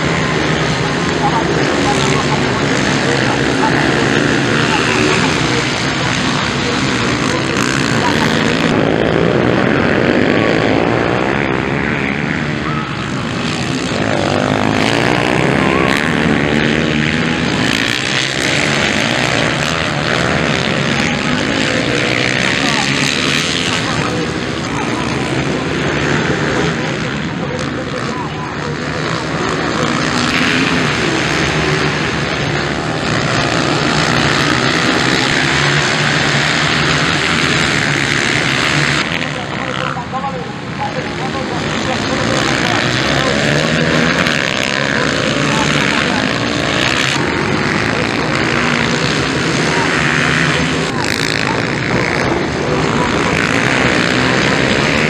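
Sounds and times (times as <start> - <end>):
dirt bike engines revving: 0.0 - 55.0.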